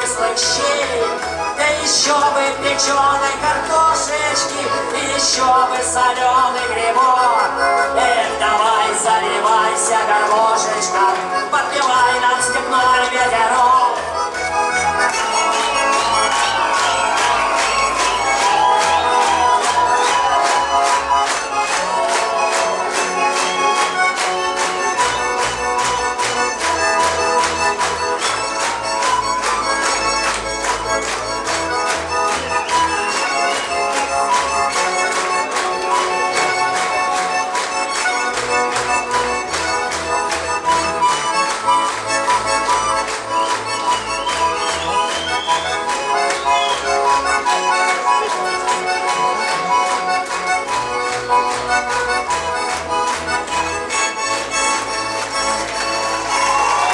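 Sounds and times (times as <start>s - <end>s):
accordion playing fast chords: 0.0s - 56.9s.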